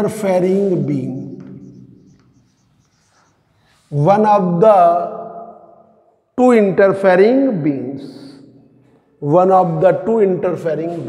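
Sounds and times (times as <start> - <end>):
man speaking: 0.0 - 1.6, 3.9 - 5.4, 9.2 - 11.0
marker writing on whiteboard: 0.4 - 3.9.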